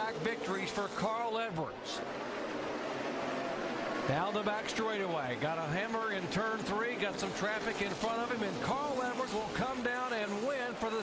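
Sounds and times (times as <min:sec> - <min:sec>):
race car engines droning: 0:00.0 - 0:11.0.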